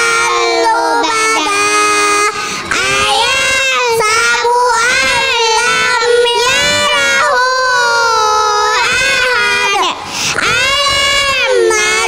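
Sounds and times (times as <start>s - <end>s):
girls singing in unison: 0.0s - 12.0s.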